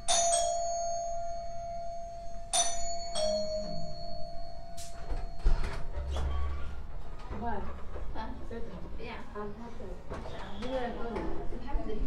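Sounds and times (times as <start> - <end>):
doorbell chime: 0.0 - 6.0.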